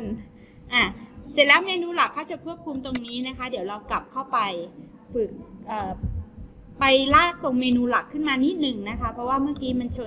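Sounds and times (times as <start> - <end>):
faint steady hum: 0.0 - 10.0
woman speaking: 0.0 - 10.0.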